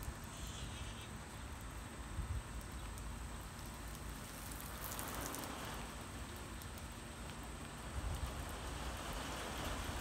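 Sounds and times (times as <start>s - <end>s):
lawn sprinkler spraying: 0.0s - 10.0s.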